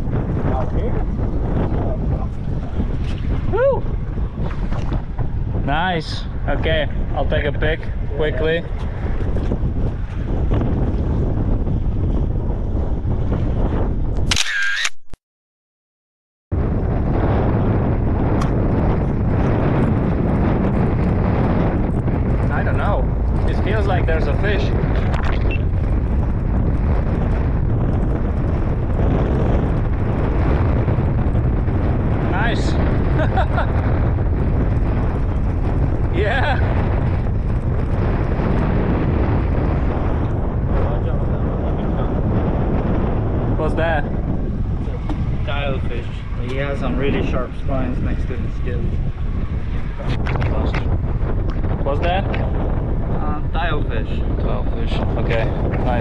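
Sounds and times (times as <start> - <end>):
wind buffeting microphone: 0.0 - 14.9, 16.5 - 56.0.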